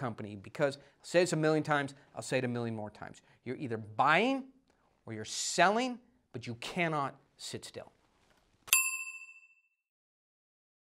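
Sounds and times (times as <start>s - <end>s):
metallic chime ding: 8.7s - 9.8s.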